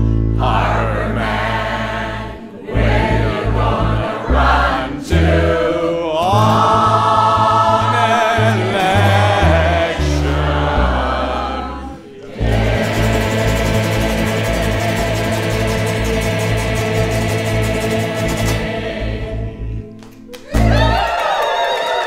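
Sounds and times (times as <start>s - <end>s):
upright bass: 0.0s - 21.1s
choir singing: 0.3s - 20.0s
strummed acoustic guitar: 12.2s - 19.6s.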